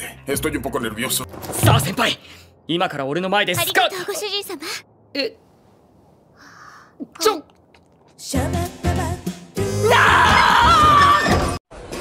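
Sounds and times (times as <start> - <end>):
breathy intake: 6.4 - 7.0
person gasping: 6.4 - 7.0.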